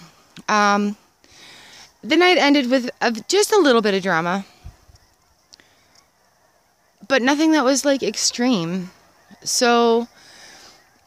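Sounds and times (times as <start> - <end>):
distant geese honking: 0.0 - 11.0.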